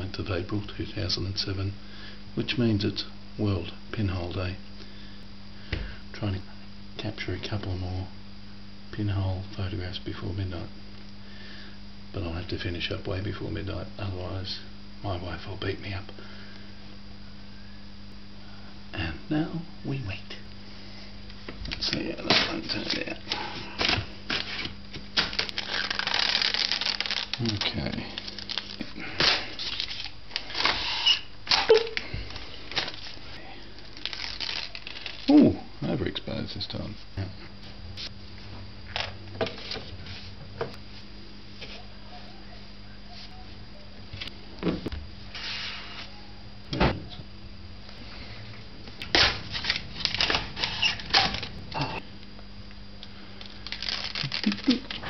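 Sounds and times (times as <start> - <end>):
hands rustling film print: 21.7 - 35.3, 49.0 - 51.6, 53.4 - 55.0
instant film pulled through rollers: 49.1 - 51.5.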